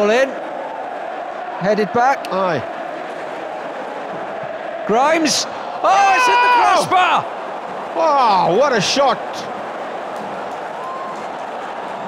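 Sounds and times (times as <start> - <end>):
stadium crowd voices: 0.0 - 12.0.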